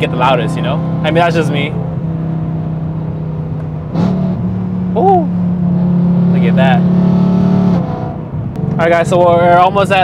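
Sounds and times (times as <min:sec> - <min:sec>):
car engine exhaust drone: 0:00.0 - 0:10.0.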